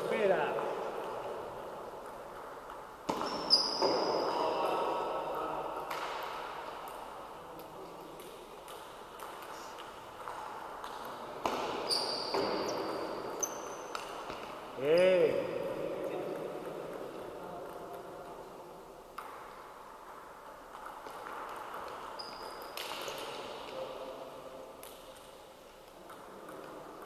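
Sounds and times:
sneakers squeaking on floor: 3.1s - 4.9s, 11.4s - 14.9s, 22.0s - 23.6s.

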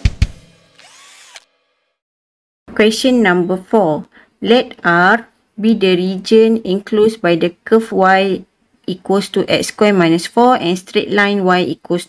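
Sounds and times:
sharp drum hits: 0.0s - 0.6s.

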